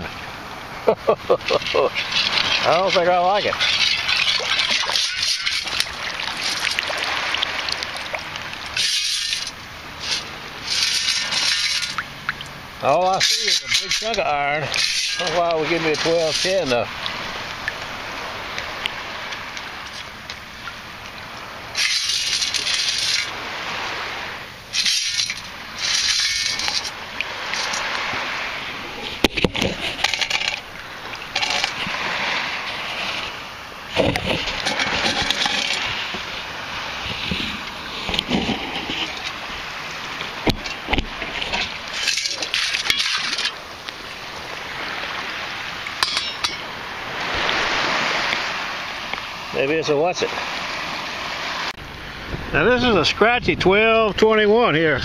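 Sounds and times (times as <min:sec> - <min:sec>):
water sloshing and splashing: 0:00.0 - 0:52.6.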